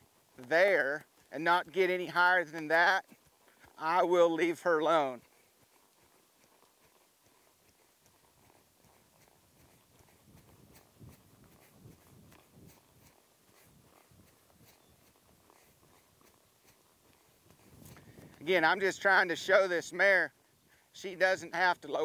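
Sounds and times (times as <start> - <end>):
horse hooves on soft dirt: 0.0 - 22.0.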